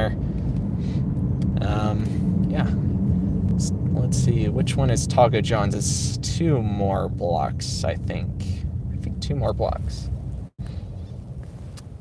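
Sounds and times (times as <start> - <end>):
car engine and tyres rumbling: 0.0 - 12.0.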